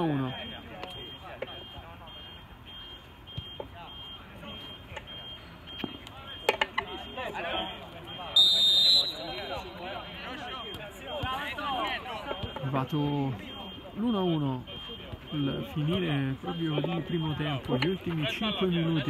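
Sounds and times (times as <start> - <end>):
players calling out: 0.0 - 19.0
referee's whistle blast: 8.1 - 10.1.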